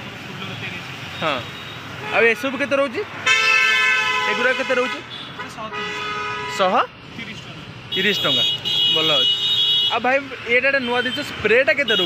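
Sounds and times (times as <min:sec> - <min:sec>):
busy street market hum: 0:00.0 - 0:12.0.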